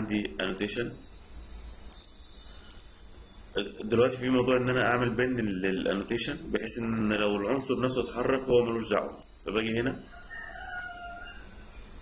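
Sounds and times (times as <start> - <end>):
low background hiss: 0.0 - 12.0
faint distant bird call: 0.8 - 4.3.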